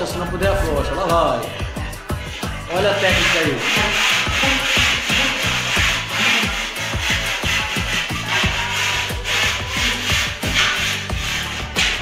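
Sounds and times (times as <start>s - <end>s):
music with heavy bass beat: 1.5s - 12.0s
plaster panel edge rasping: 2.2s - 12.0s.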